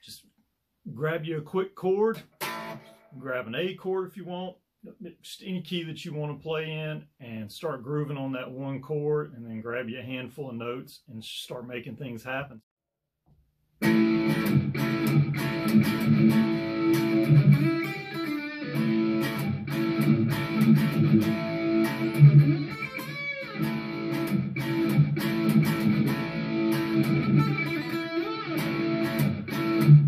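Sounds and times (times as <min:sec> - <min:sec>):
electric guitar jamming a groove: 0:02.2 - 0:03.1, 0:13.8 - 0:30.0.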